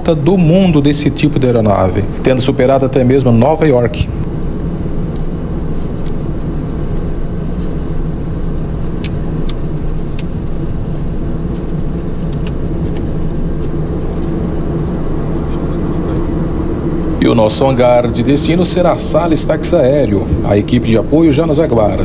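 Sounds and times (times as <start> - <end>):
turboprop engines humming: 0.0 - 22.0.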